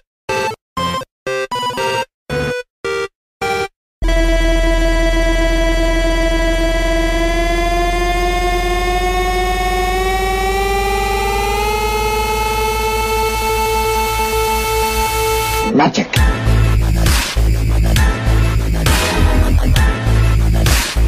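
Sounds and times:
heavy low buzz: 0:04.0 - 0:21.0
rising electronic drone: 0:04.0 - 0:21.0.

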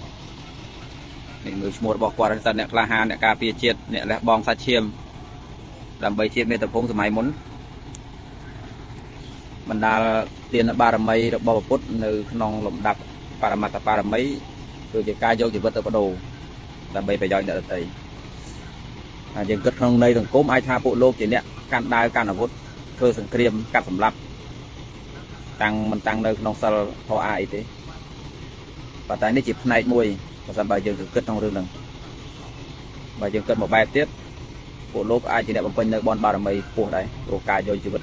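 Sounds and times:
low outdoor rumble: 0:00.0 - 0:38.0
man speaking: 0:01.4 - 0:05.0, 0:05.7 - 0:07.4, 0:09.6 - 0:16.3, 0:16.9 - 0:18.0, 0:19.3 - 0:24.2, 0:25.6 - 0:27.7, 0:29.1 - 0:31.8, 0:33.2 - 0:34.1, 0:34.9 - 0:38.0
man talking: 0:01.4 - 0:05.0, 0:05.7 - 0:07.4, 0:09.6 - 0:16.3, 0:16.9 - 0:18.6, 0:19.3 - 0:24.2, 0:25.6 - 0:27.7, 0:29.1 - 0:31.8, 0:33.2 - 0:34.2, 0:34.9 - 0:38.0.

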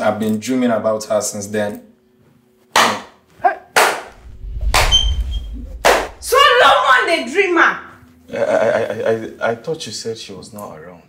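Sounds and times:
low rumble: 0:04.1 - 0:06.6.

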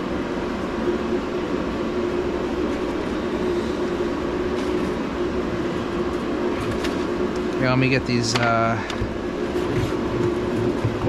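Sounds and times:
mechanical drone: 0:00.0 - 0:11.0.

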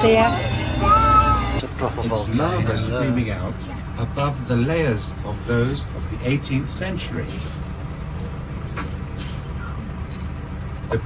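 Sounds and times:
coach engine low rumble: 0:00.0 - 0:11.0
short high hisses: 0:09.2 - 0:09.7.

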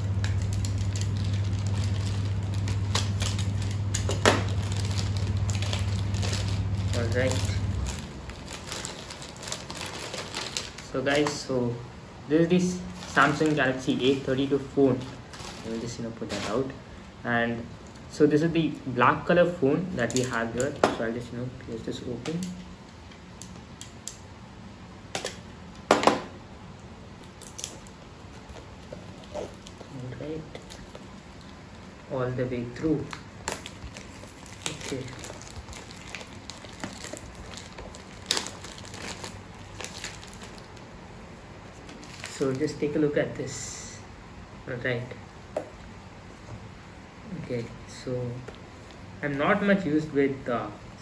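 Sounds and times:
cardboard crunch: 0:12.9 - 0:16.7.

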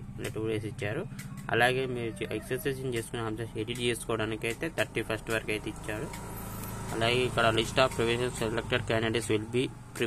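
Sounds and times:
man talking: 0:00.0 - 0:06.2, 0:06.9 - 0:10.0.

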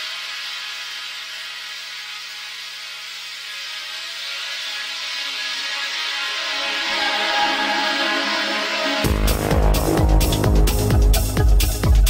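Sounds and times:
techno synth breakdown: 0:06.3 - 0:12.0.

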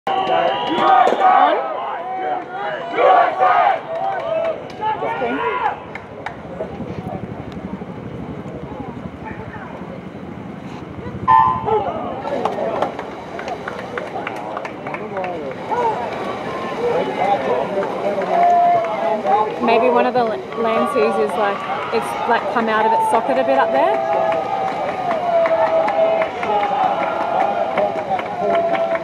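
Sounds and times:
crowd voices: 0:00.1 - 0:29.0.

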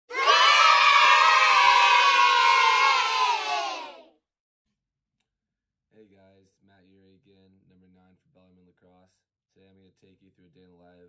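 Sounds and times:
crowd shouting and cheering: 0:00.0 - 0:04.0.

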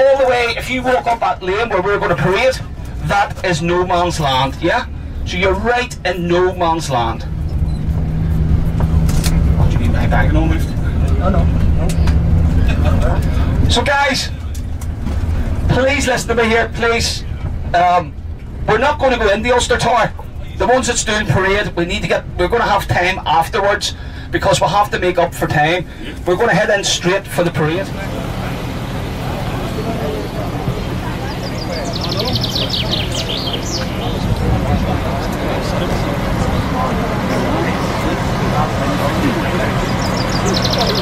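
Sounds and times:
coach engine and road noise: 0:00.0 - 0:41.0
faint voices chatting: 0:27.2 - 0:41.0.

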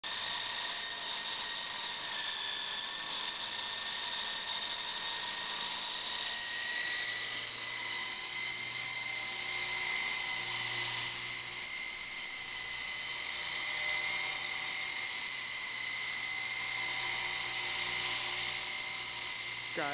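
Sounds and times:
model helicopter motor whine: 0:00.0 - 0:19.9.

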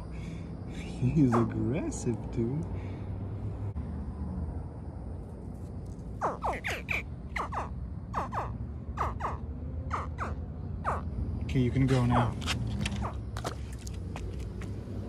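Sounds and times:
baby alligator chirping calls: 0:06.2 - 0:11.1.

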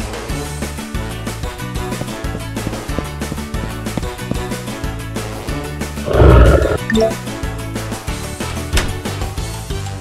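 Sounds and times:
gorilla roar: 0:06.1 - 0:07.1.

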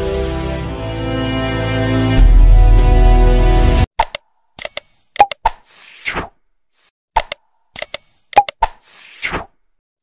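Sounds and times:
sharp clicks and pops: 0:04.0 - 0:06.3, 0:07.1 - 0:09.0.

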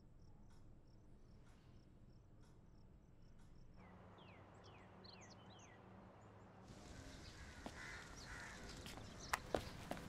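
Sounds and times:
low hum: 0:00.0 - 0:08.8.

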